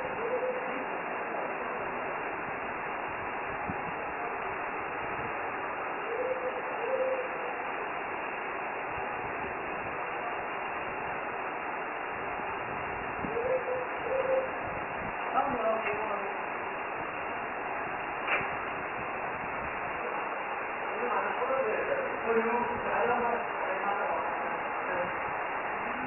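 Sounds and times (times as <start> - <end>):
background hiss: 0.0 - 26.0.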